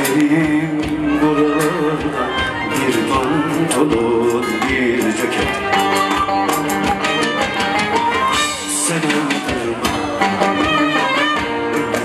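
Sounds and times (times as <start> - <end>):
hand-drum beat: 0.0 - 12.0
plucked string instruments: 0.0 - 12.0.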